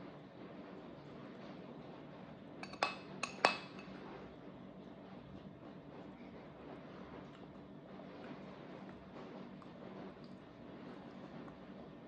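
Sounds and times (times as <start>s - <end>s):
metal spoon clinking on ceramic bowl: 2.6s - 3.9s.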